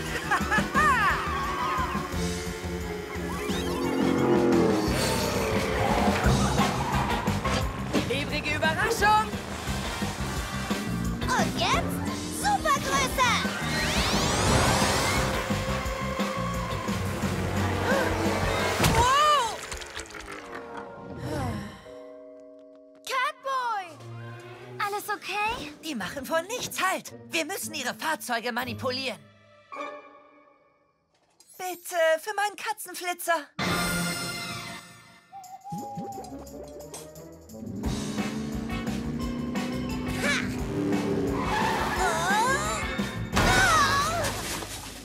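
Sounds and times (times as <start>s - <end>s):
background music: 0.0s - 31.1s, 33.6s - 45.0s
cartoon race cars speeding past: 3.1s - 8.0s, 9.2s - 18.8s, 37.6s - 42.9s.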